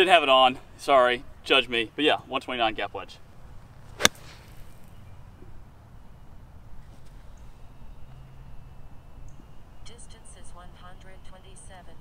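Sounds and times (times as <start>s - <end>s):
golf club striking ball: 3.9s - 5.0s.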